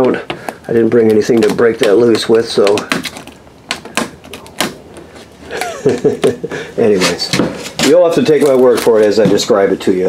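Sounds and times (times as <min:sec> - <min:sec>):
fingernails picking plastic film: 0:00.9 - 0:05.3.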